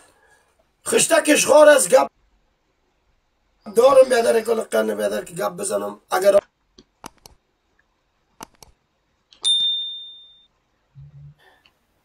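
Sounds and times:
high ding: 9.4 - 10.5
short low hum: 10.9 - 11.4.

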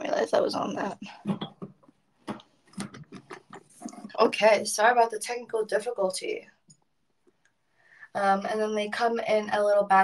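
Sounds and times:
taps and rubs on phone microphone: 1.1 - 4.2.

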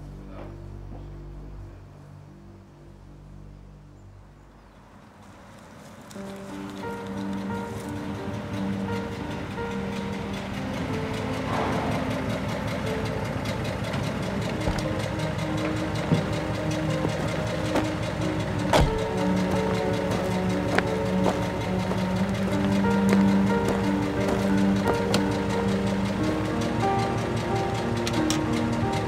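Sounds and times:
orchestral film music: 0.0 - 29.0
tyres rolling on dirt road: 5.2 - 29.0
car engine running: 6.7 - 29.0
sharp knocks: 18.7 - 19.1.

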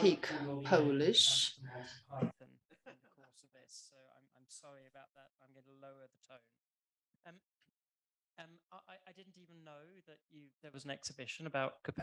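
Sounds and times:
faint indistinct speech: 0.0 - 6.5, 8.4 - 12.0.

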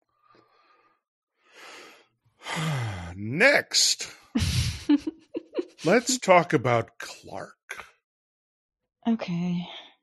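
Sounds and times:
person breathing in: 1.5 - 3.1
person sighing: 1.6 - 3.4, 4.0 - 4.9, 5.8 - 6.4.

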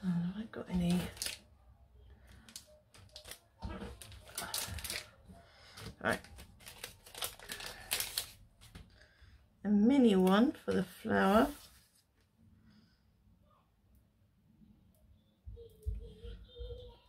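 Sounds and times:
packets and card rustling: 0.8 - 1.4, 2.4 - 8.9.

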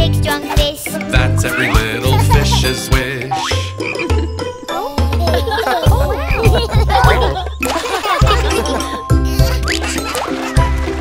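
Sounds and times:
backing music with bass line: 1.0 - 10.0.

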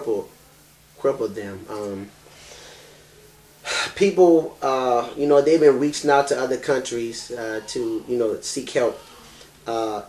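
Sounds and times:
man's sharp intake of breath: 2.3 - 3.0.

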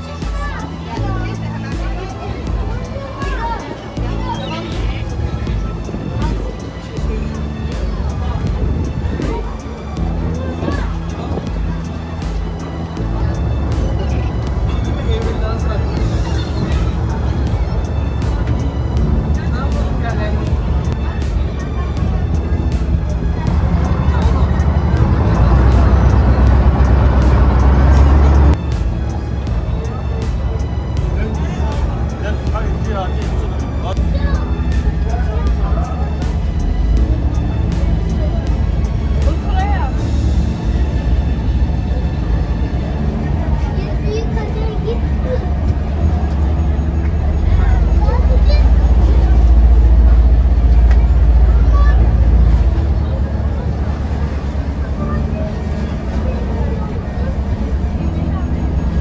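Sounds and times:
ferry engine rumble: 0.0 - 59.0
voices chattering: 0.0 - 59.0
water noise: 0.0 - 59.0
wind noise: 7.9 - 11.9.

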